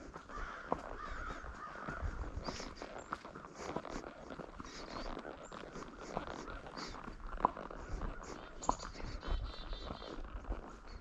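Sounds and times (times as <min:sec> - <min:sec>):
horse hooves on road: 0:00.0 - 0:11.0.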